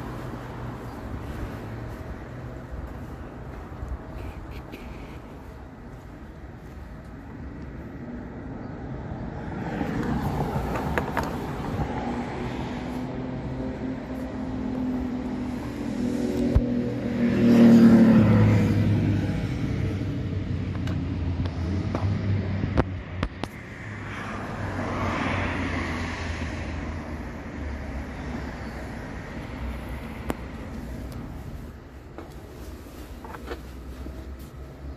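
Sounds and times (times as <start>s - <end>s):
vehicle engine passing: 0.0s - 5.5s
steady traffic hum: 0.0s - 34.9s.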